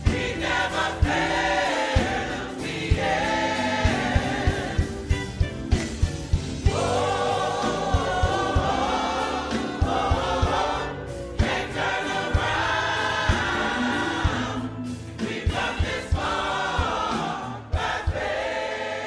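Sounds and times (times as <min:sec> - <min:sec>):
gospel choir singing: 0:00.0 - 0:19.0.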